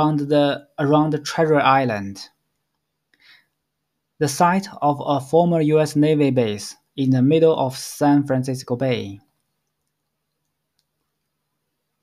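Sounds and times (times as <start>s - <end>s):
man speaking: 0.0s - 2.4s, 4.2s - 9.3s
computer mouse clicks: 9.3s - 11.4s.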